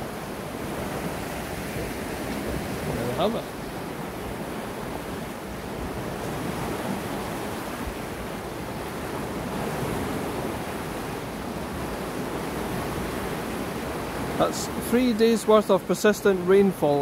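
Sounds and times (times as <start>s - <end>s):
river water rushing: 0.0s - 17.0s.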